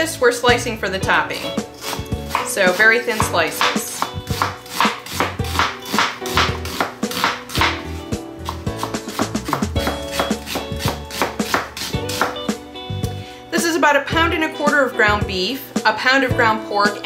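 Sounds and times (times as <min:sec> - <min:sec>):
knife slicing onion on board: 0:01.8 - 0:12.5.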